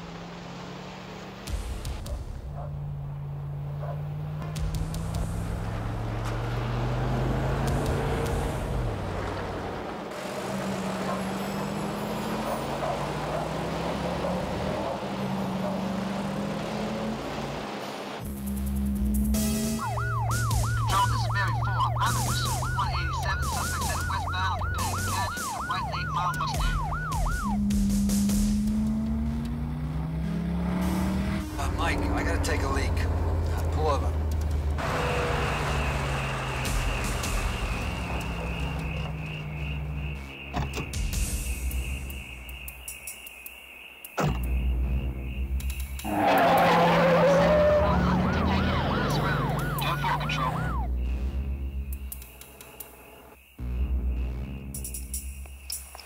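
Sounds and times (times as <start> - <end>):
car engines accelerating hard: 0.0 - 43.2, 44.2 - 56.0
police siren yelping: 19.4 - 29.9, 46.0 - 51.0.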